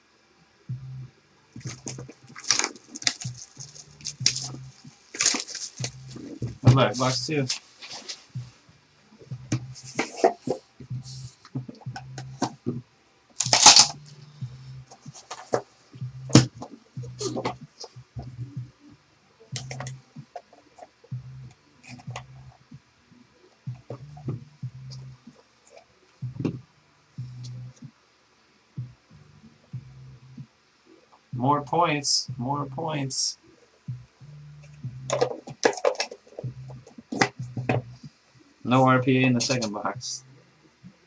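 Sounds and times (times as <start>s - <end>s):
low hum: 0.3s - 7.5s, 8.2s - 15.2s, 15.8s - 20.2s, 21.0s - 25.4s, 28.8s - 30.4s, 33.8s - 35.1s
card packaging rustling: 1.6s - 8.3s, 9.9s - 10.7s, 13.4s - 14.0s, 14.9s - 15.7s, 35.1s - 37.3s.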